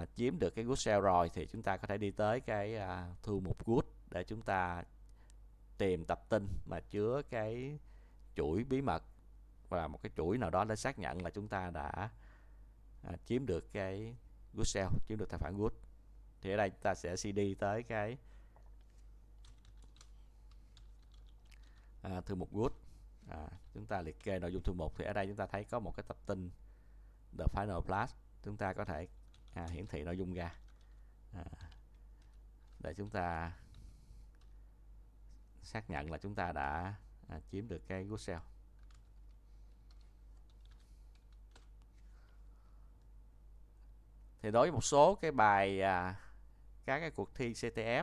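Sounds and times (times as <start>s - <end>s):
low steady hum: 0.0s - 48.0s
computer keyboard clicks: 18.8s - 21.7s, 29.2s - 29.9s, 38.8s - 39.3s, 39.9s - 42.4s.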